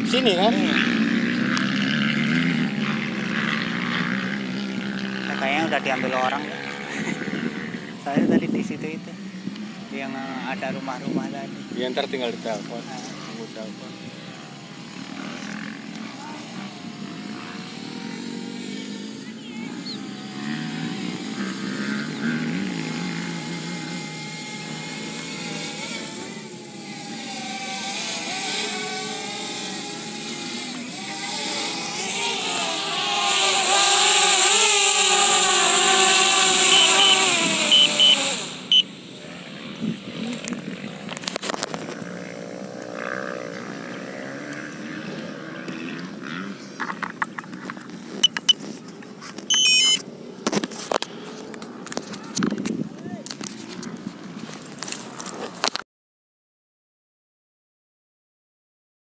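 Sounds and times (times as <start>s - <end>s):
drone propellers buzzing: 0.0s - 52.8s.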